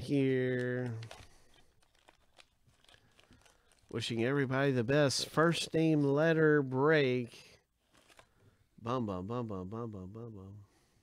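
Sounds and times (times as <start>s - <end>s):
plastic bag crinkling: 0.0s - 4.6s, 7.8s - 8.5s.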